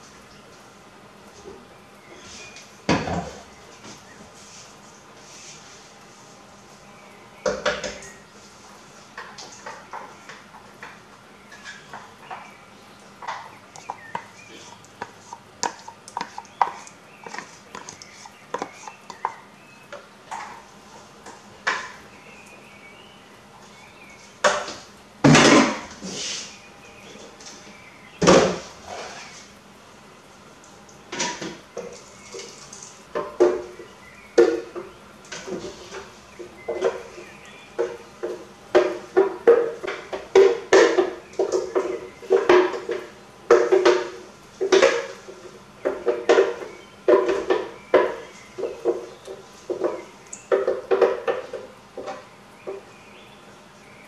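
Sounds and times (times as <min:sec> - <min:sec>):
spatula scraping glass jar: 0:13.8 - 0:19.3.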